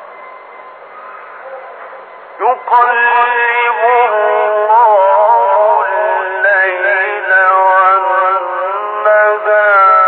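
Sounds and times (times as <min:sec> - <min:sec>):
man chanting melodic recitation: 0:02.4 - 0:10.0.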